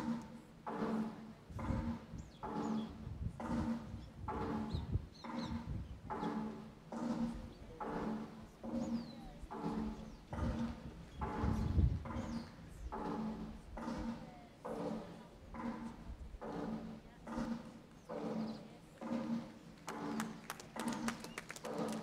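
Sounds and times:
pitched beats with low thump: 0.0 - 14.1.

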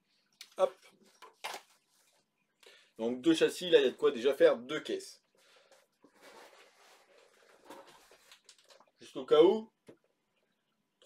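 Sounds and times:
plastic packaging rustling: 1.0 - 2.2, 5.7 - 9.0.

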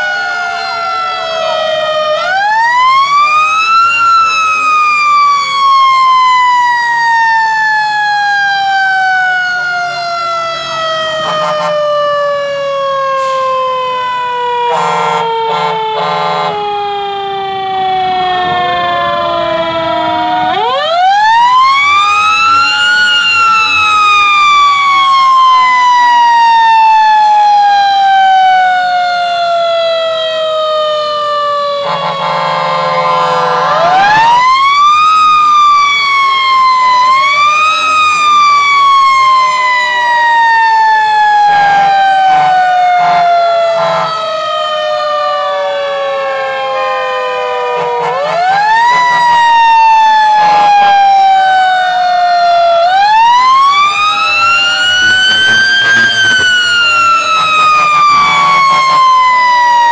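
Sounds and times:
faint sirens: 0.0 - 59.9
fire truck siren wailing: 0.0 - 59.9.

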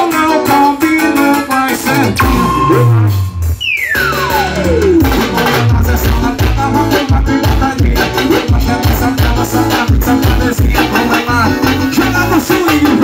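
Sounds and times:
electronic keyboard band music: 0.0 - 13.0
falling pitch sweep: 2.2 - 5.2.

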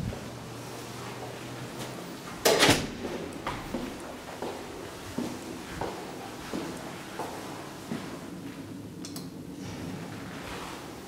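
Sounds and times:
footsteps on hard floor: 3.4 - 8.6.

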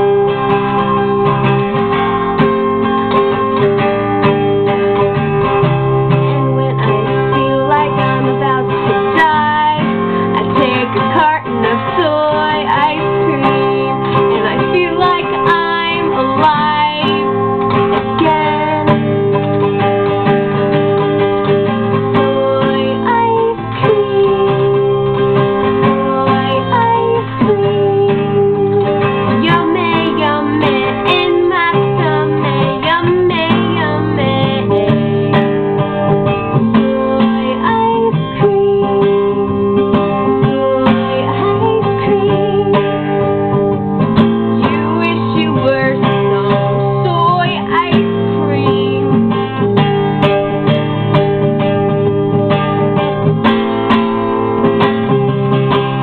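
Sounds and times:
acoustic guitar strumming: 0.0 - 56.0
woman singing: 4.9 - 49.8.

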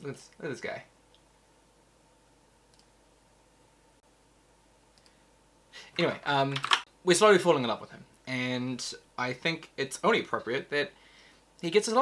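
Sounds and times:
person speaking: 0.0 - 1.0, 5.8 - 11.0, 11.6 - 12.0
faint click: 2.7 - 3.0, 4.9 - 5.2
breath: 11.0 - 11.5.

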